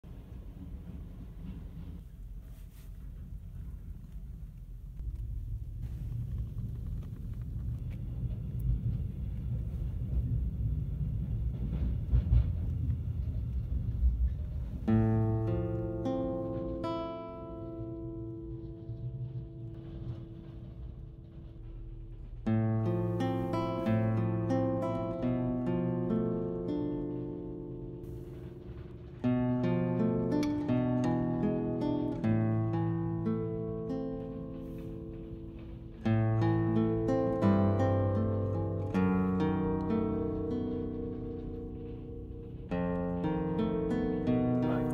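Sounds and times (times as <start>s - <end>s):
vehicle rumble from inside car: 2.1s - 14.8s
solo guitar music: 14.8s - 21.3s, 22.4s - 44.9s.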